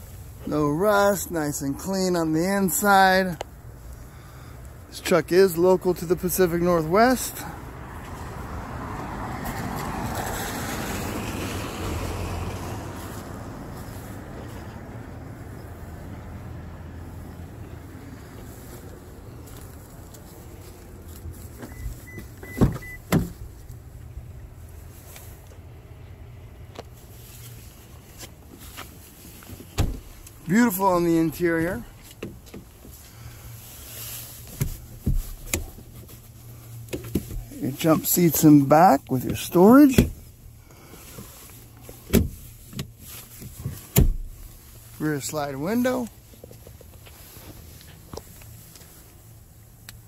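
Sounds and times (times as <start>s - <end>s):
car door latch clunks: 21.6s - 23.4s, 44.0s - 44.3s.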